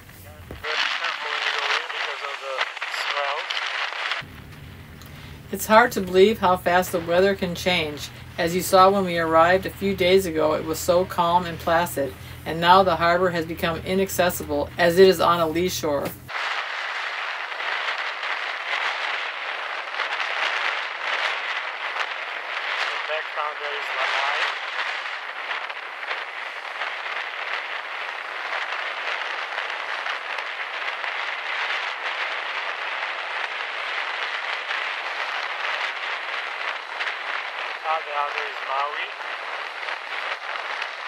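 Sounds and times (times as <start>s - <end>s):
surf breaking: 0.0s - 11.2s, 16.2s - 41.0s.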